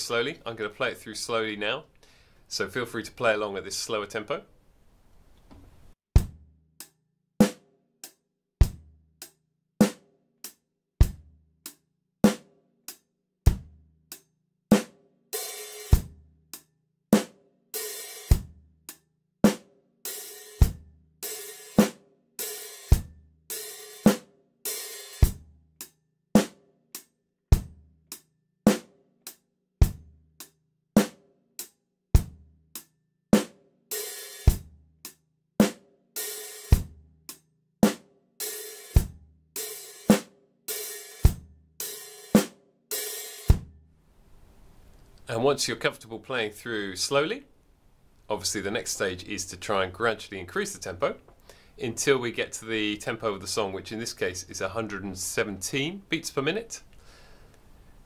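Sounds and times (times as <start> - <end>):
bass drum: 5.5 - 6.5, 8.6 - 9.0, 11.0 - 11.4, 13.5 - 13.8, 29.8 - 30.1
snare drum: 7.4 - 7.6, 20.4 - 25.4, 26.4 - 26.6, 31.0 - 31.2, 33.4 - 34.7, 35.6 - 36.9, 37.8 - 43.7
closed hi-hat pattern: 14.7 - 16.6, 19.5 - 25.5, 31.0 - 43.7.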